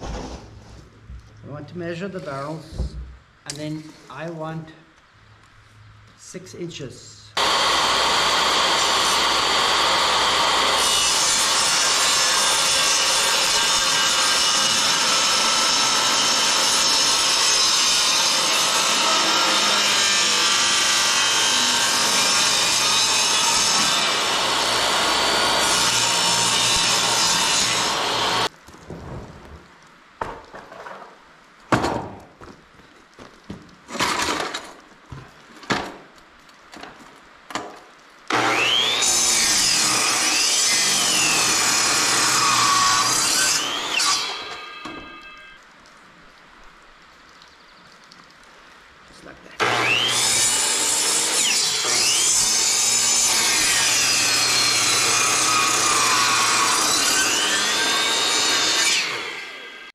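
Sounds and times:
table saw ripping plywood: 0.0s - 0.8s, 7.4s - 29.5s, 33.8s - 34.8s, 38.3s - 45.4s, 49.6s - 59.5s
circular saw cutting a board: 7.4s - 28.5s, 38.3s - 45.5s, 49.6s - 59.9s
wood knocking and clunking: 28.6s - 37.8s.

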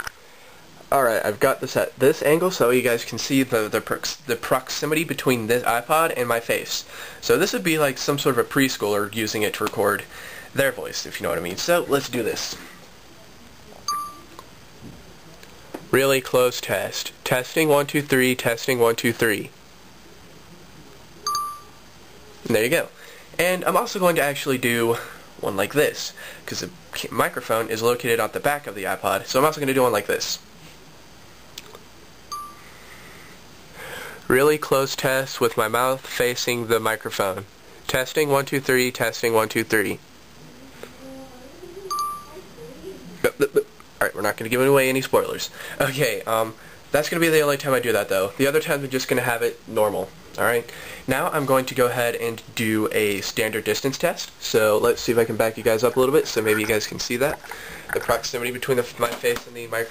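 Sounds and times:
short electronic beep: 13.9s - 14.3s, 21.2s - 21.8s.

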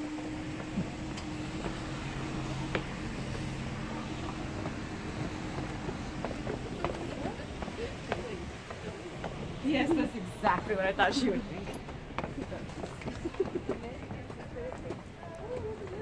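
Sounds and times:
car engine low hum: 0.0s - 10.1s.

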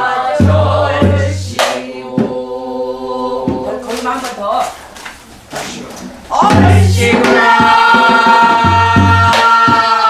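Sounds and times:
barrel drum strokes: 6.1s - 10.0s.

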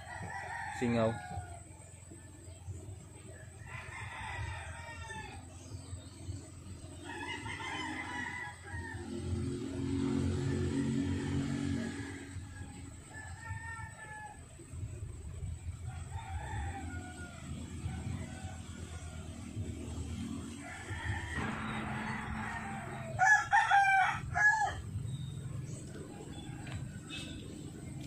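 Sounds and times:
rooster crowing: 0.0s - 1.8s, 3.6s - 5.5s, 7.0s - 14.7s, 15.8s - 25.4s, 26.1s - 27.6s
low rumble: 21.2s - 28.0s.

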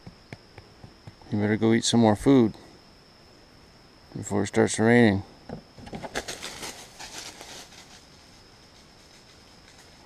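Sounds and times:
high-pitched insect drone: 0.0s - 10.0s
light rustling: 5.8s - 10.0s.

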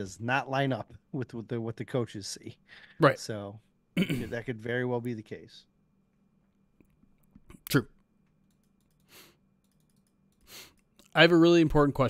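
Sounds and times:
faint clicks: 8.2s - 11.2s.

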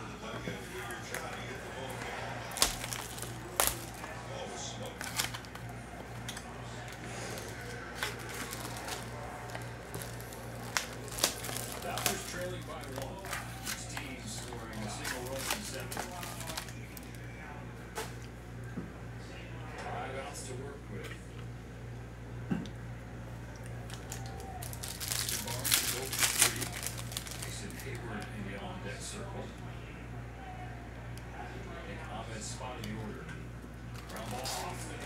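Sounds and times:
foil crinkling: 0.7s - 17.3s, 23.8s - 28.4s, 33.9s - 35.0s.

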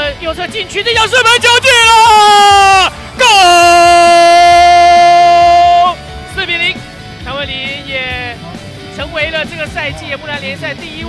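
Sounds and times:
commentator shouting goal: 0.4s - 6.7s
commentator excited calls: 0.8s - 6.0s.

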